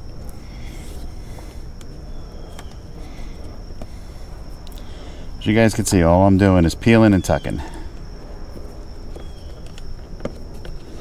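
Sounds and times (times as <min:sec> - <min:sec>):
thin steady high tone: 0:00.0 - 0:11.0
cable handling clicks and rustles: 0:09.0 - 0:11.0.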